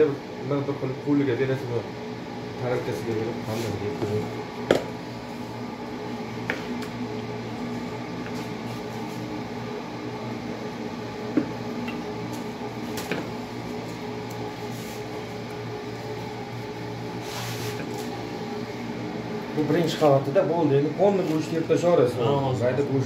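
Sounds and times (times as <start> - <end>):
steady low hum: 0.0 - 23.0
knife knocking on cutting board: 4.7 - 4.9.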